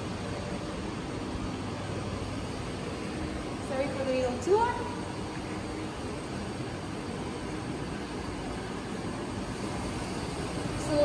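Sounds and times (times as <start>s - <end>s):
laboratory machine noise: 0.0s - 11.0s.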